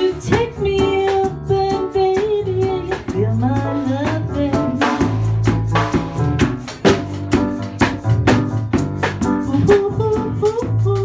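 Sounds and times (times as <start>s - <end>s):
woman singing: 0.0s - 5.2s, 9.3s - 11.0s
band with guitar and drums: 0.0s - 11.0s.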